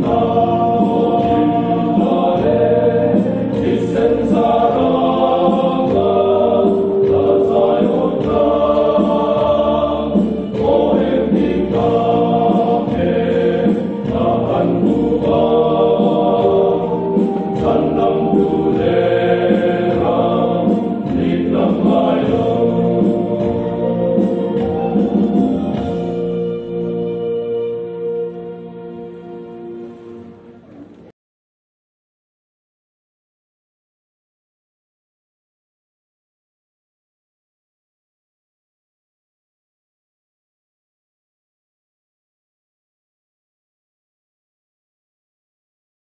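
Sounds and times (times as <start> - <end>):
men singing a hymn: 0.0 - 25.4.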